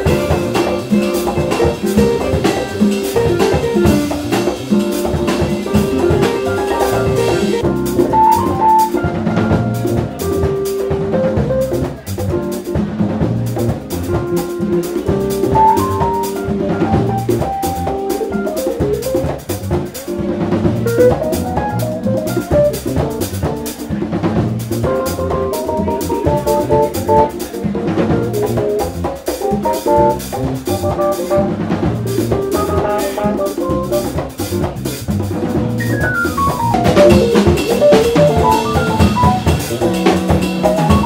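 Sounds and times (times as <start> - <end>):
sustained keyboard chords: 0.0 - 23.8, 24.4 - 34.7, 35.4 - 41.0
drum and cymbal hits: 0.0 - 41.0
jazz fusion band playing: 0.0 - 41.0
held melody notes: 35.6 - 41.0.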